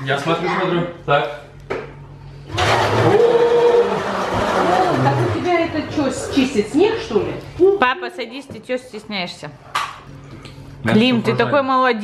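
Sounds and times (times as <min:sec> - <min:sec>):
voices: 0:03.2 - 0:09.4.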